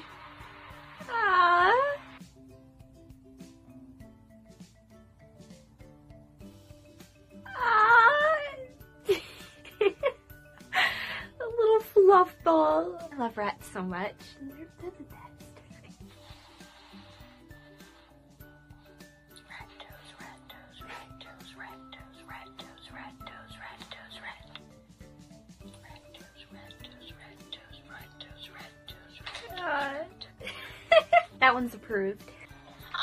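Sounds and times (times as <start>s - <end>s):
quiet music with held notes: 0.0s - 33.0s
woman squealing laugh: 7.5s - 8.7s
person whispering: 19.4s - 24.6s, 25.7s - 29.7s.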